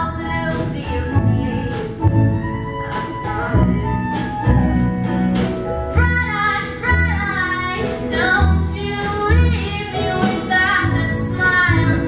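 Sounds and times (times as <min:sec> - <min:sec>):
woman singing: 0:00.0 - 0:04.6, 0:05.9 - 0:12.0
acoustic guitar: 0:00.0 - 0:12.0
low bass notes: 0:00.0 - 0:12.0.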